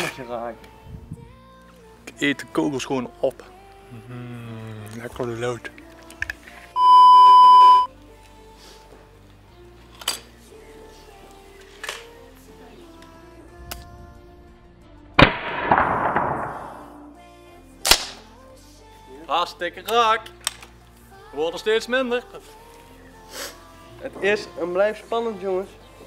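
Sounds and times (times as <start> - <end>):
background music: 0.0 - 26.0
test-tone beep: 6.8 - 7.9
air rifle shots: 15.2 - 17.1, 17.8 - 18.2.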